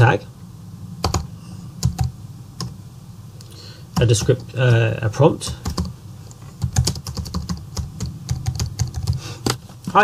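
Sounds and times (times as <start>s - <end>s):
computer keyboard typing: 1.0s - 2.7s, 5.4s - 5.9s, 6.6s - 9.6s.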